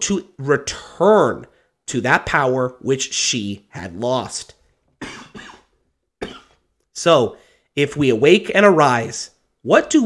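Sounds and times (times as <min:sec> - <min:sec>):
man coughing: 0:05.0 - 0:06.6.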